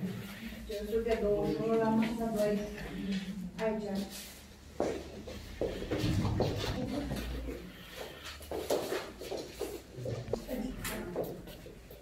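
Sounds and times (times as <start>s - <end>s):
shuffling movement: 0.0s - 11.9s
indistinct voices: 5.0s - 8.2s.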